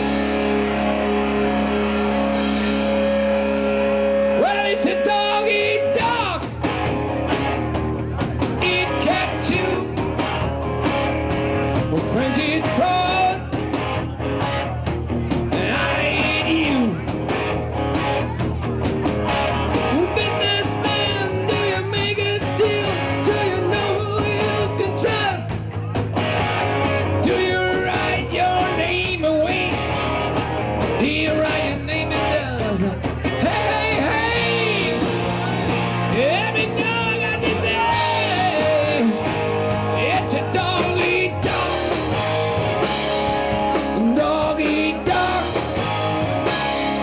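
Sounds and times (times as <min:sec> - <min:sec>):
live rock band playing: 0:00.0 - 0:47.0
male lead singer: 0:02.8 - 0:17.4, 0:19.7 - 0:47.0.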